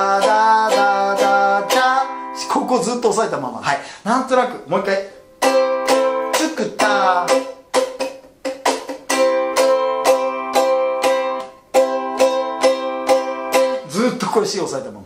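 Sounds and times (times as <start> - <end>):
ukulele strumming: 0.0 - 3.1, 4.8 - 14.6.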